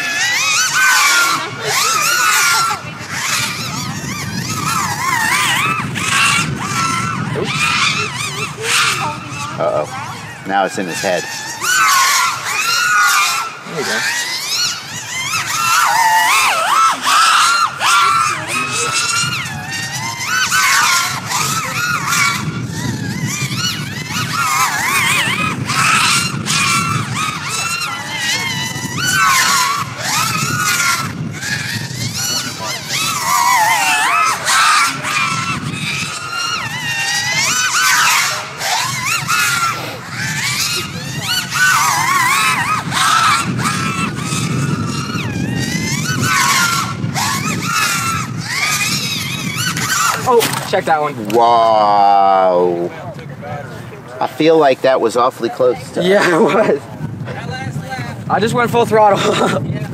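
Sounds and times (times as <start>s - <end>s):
quadcopter motors whining: 0.0s - 59.9s.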